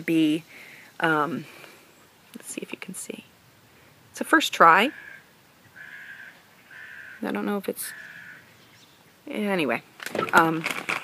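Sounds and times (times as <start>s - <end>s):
faint bird calling: 4.9s - 9.1s.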